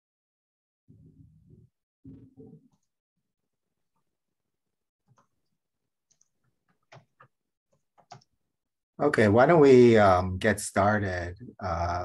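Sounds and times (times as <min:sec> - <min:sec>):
faint clicks: 0:06.1 - 0:07.3.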